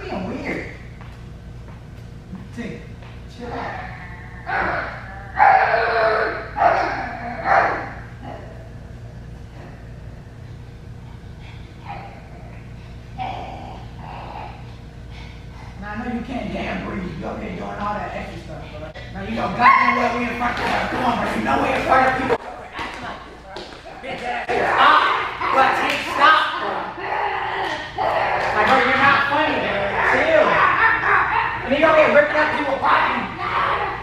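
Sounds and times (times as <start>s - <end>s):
person imitating a dog: 3.4s - 8.6s.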